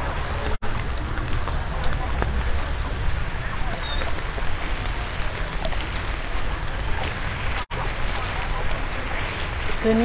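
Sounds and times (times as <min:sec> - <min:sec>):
heavy rain hissing: 0:00.0 - 0:10.0.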